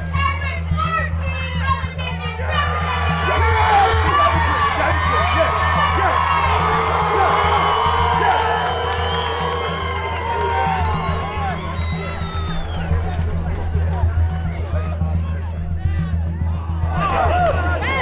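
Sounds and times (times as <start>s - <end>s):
background music with drone: 0.0s - 18.0s
crowd cheering and shouting: 0.0s - 18.0s.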